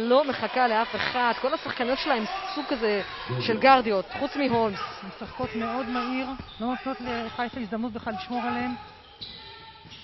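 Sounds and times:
commentator speaking: 3.3 - 6.2.

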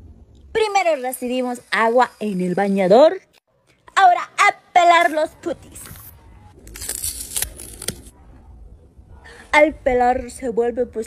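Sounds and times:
peel ripping: 6.6 - 8.1.

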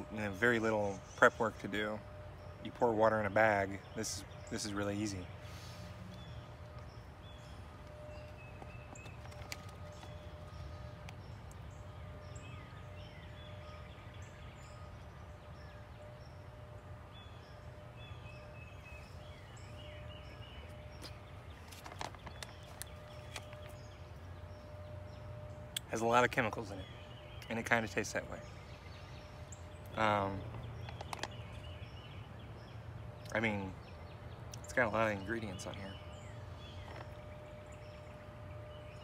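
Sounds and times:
distant birds chirping: 0.0 - 39.0
faint steady hum: 0.0 - 39.0.

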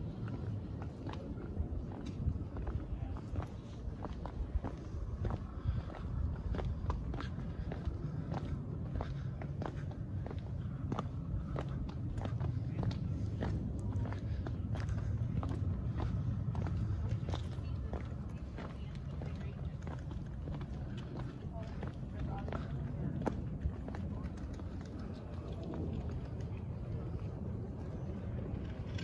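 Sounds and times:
footsteps on cobblestones: 0.0 - 29.0
low rumble: 0.0 - 29.0.

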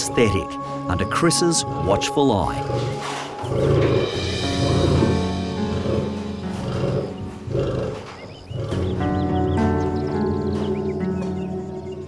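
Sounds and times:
soundtrack music: 0.0 - 12.0
lion vocalizing: 1.0 - 12.0.

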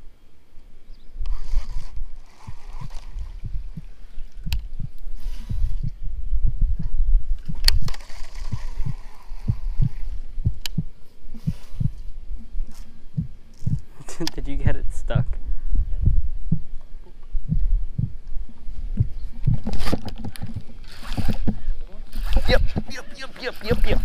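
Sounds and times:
sharp clicks: 10.6 - 10.8
camera handling thumps and rumble: 18.8 - 21.7, 22.5 - 23.0.

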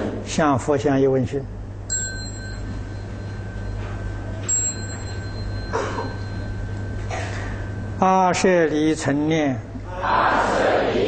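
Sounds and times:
low steady hum: 0.0 - 11.0
small bell ringing: 1.9 - 9.3.

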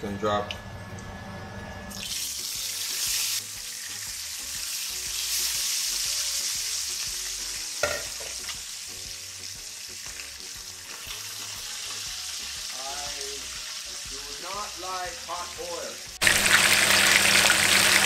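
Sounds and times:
fish sizzling in hot oil: 1.9 - 18.0.

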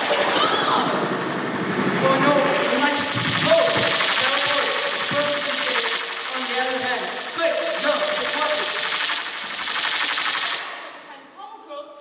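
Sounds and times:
rapid rattling sound effect: 2.0 - 10.8.

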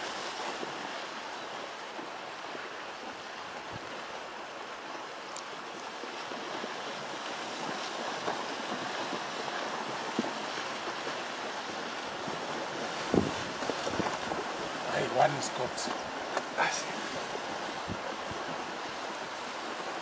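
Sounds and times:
faint clicks: 5.3 - 5.9
steady rushing noise: 7.0 - 20.0.

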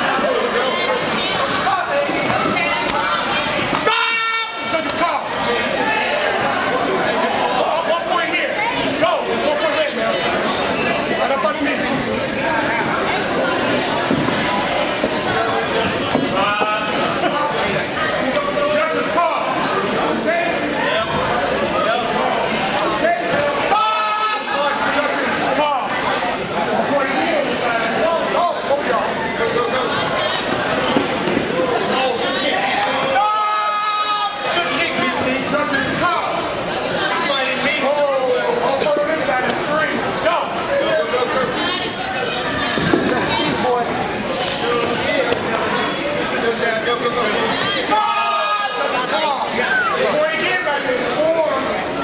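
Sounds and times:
people talking and calling out: 0.0 - 52.0.

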